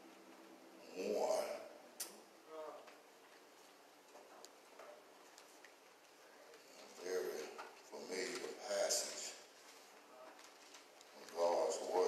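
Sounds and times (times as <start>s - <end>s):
man speaking in low voice: 0.8s - 1.7s, 6.7s - 9.5s, 11.1s - 12.0s.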